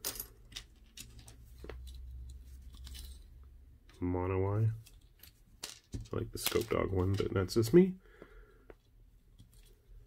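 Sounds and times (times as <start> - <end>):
plastic parts clicking and rattling: 0.0 - 3.4, 4.7 - 7.5.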